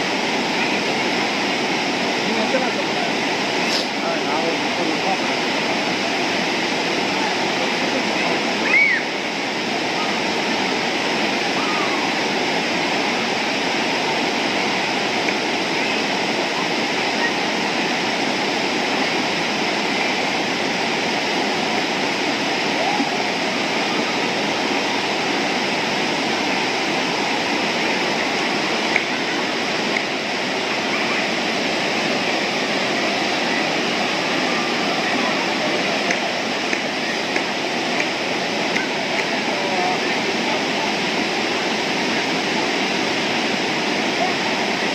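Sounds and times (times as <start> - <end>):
river rapids rushing over rocks: 0.0 - 44.9.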